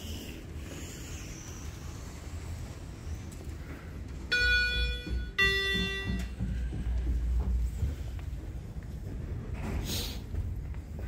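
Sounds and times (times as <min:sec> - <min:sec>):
elevator arrival chime: 0:04.3 - 0:06.6.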